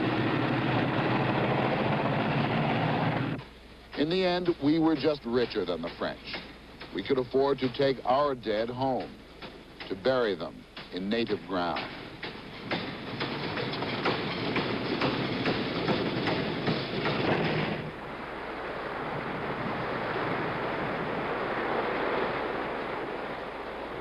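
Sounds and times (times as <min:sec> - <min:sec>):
surf and wind rushing: 0:00.0 - 0:24.0.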